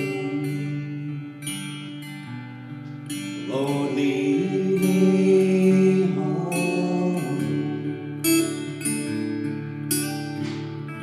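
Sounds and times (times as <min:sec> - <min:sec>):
acoustic guitar: 0:00.0 - 0:11.0
woman and man singing: 0:03.5 - 0:08.2.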